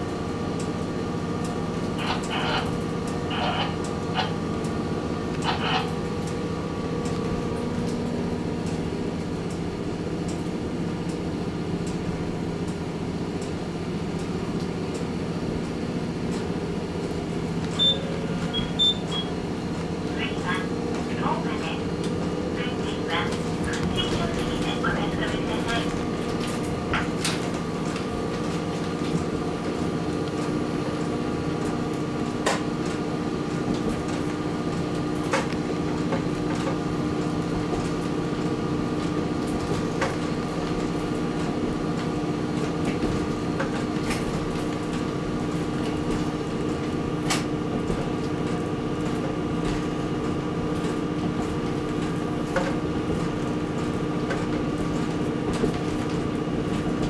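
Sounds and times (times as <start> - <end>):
diesel train engine running: 0.0 - 57.0.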